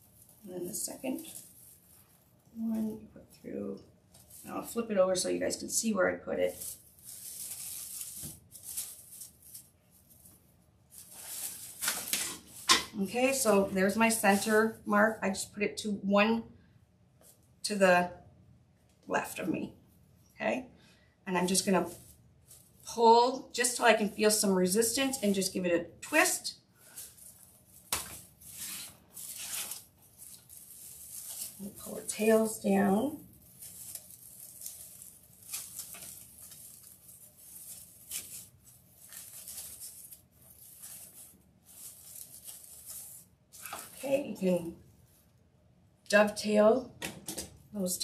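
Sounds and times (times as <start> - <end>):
plastic mesh rustling and crinkling: 0.0 - 3.5, 4.1 - 4.8, 6.4 - 14.8, 21.4 - 22.9, 26.8 - 45.4.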